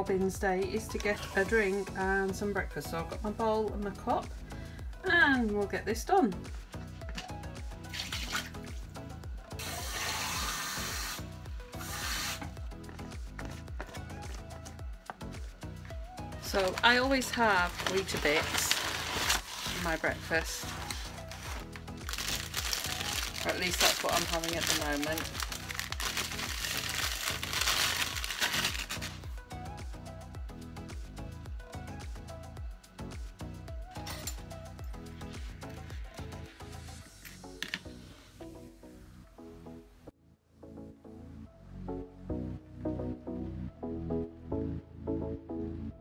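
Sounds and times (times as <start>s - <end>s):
music with steady beat: 2.6s - 19.6s, 20.4s - 37.9s
paper bag crinkling: 16.5s - 29.2s.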